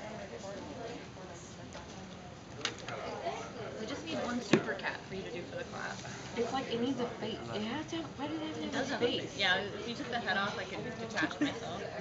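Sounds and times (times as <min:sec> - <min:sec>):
low murmuring voices: 0:00.0 - 0:12.0.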